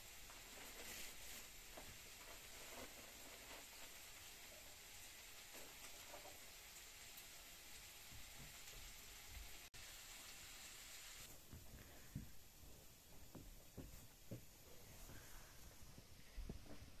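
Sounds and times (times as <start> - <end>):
faint hiss: 0.0 - 17.0
cloth rustling: 0.2 - 4.2.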